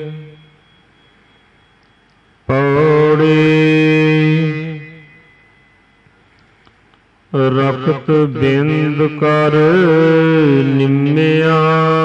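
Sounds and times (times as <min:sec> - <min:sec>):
man chanting long steady note: 0:00.0 - 0:06.1, 0:07.3 - 0:12.0.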